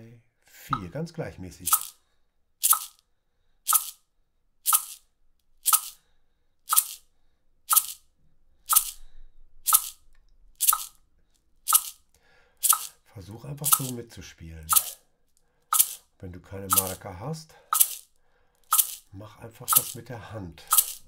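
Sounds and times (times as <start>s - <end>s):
maraca shaking: 1.6s - 2.0s, 2.6s - 3.0s, 3.7s - 4.0s, 4.7s - 5.0s, 5.7s - 6.0s, 6.7s - 7.0s, 7.7s - 8.0s, 8.7s - 9.0s, 9.7s - 10.0s, 10.6s - 10.9s, 11.7s - 12.0s, 12.6s - 13.0s, 13.6s - 14.0s, 14.6s - 15.0s, 15.7s - 16.1s, 16.7s - 17.0s, 17.7s - 18.1s, 18.7s - 19.1s, 19.7s - 21.0s
metronome clicking: 4.7s - 5.0s, 7.7s - 8.0s, 8.7s - 9.0s, 10.6s - 10.9s, 12.6s - 13.0s, 13.6s - 14.0s, 14.7s - 15.0s, 15.7s - 16.0s, 16.7s - 17.0s, 18.7s - 19.1s, 19.7s - 20.0s, 20.7s - 21.0s.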